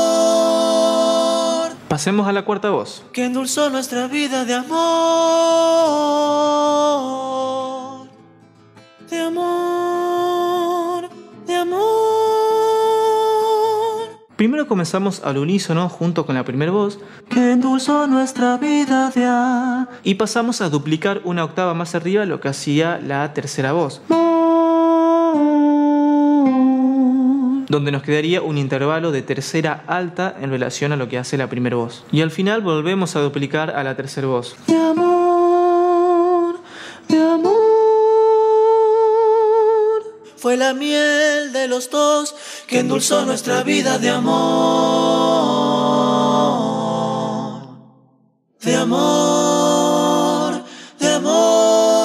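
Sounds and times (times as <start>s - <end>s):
male a cappella harmony: 0.0s - 2.2s, 3.1s - 8.2s, 9.1s - 14.3s, 16.6s - 20.2s, 24.1s - 27.8s, 34.5s - 48.0s, 48.6s - 52.0s.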